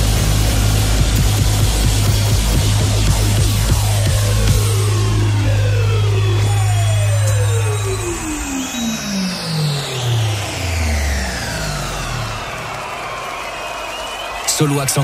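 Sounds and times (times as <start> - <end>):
synth bass: 0.0 - 13.1
descending synth notes: 0.0 - 13.5.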